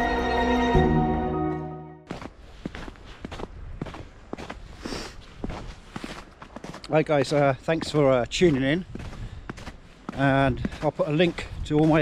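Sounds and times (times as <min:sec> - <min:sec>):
background music: 0:00.0 - 0:02.1
footsteps crunching on snow: 0:02.0 - 0:12.0.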